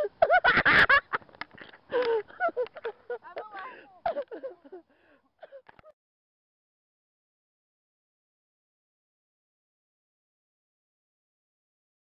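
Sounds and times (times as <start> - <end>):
people laughing: 0.0 - 4.9.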